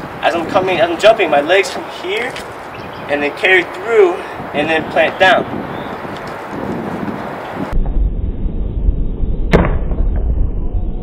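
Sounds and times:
wind noise on microphone: 0.0s - 11.0s
deep slow-motion rumble: 7.7s - 11.0s.

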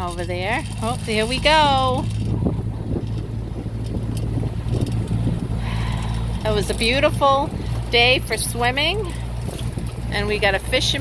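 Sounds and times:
boat motor humming: 0.0s - 11.0s
wind on microphone: 0.0s - 11.0s.

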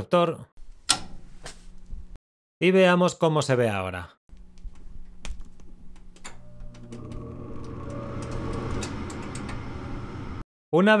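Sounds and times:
furnace motor humming: 5.7s - 10.4s.

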